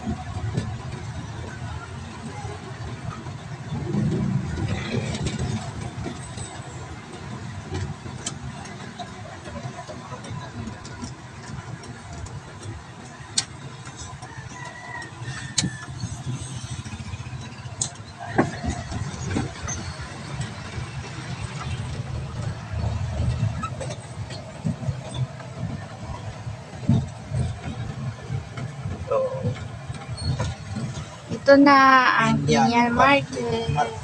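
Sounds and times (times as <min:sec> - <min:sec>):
truck engine and road noise: 0:00.0 - 0:34.0
sharp rattles and knocks: 0:03.6 - 0:31.6.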